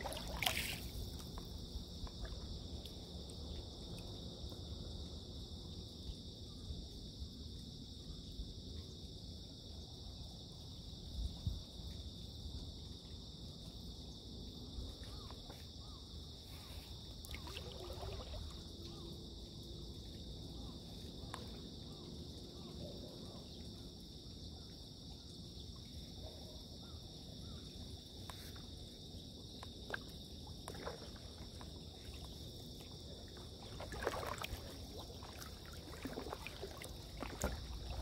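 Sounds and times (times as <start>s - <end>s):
paddle splashing in water: 0.0s - 3.0s, 16.5s - 19.2s, 29.8s - 38.0s
high-pitched insect chorus: 0.0s - 38.0s.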